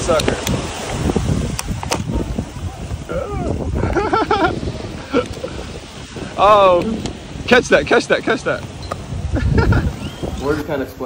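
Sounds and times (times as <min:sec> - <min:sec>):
wind noise on microphone: 0:00.0 - 0:11.0
person calling out or laughing: 0:03.0 - 0:05.4.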